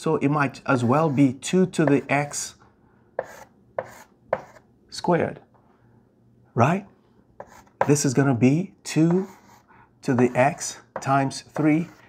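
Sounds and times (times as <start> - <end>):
chalk scraping on a blackboard: 0.8 - 2.4, 3.2 - 4.6, 7.4 - 8.1, 9.0 - 12.0.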